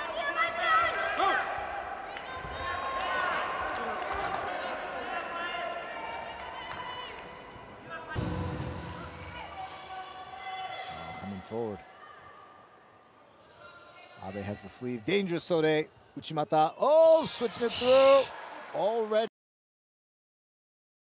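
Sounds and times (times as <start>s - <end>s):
people shouting: 17.0s - 18.4s.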